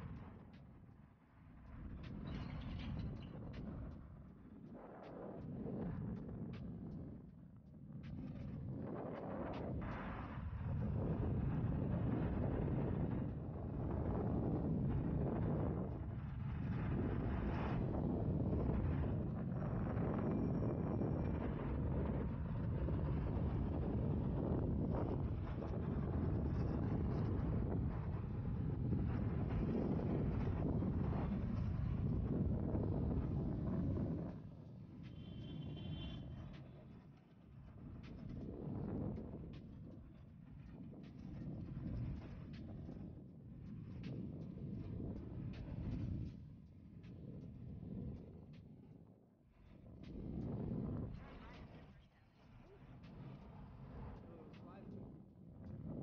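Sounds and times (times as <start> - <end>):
wind buffeting microphone: 1.7 - 56.0.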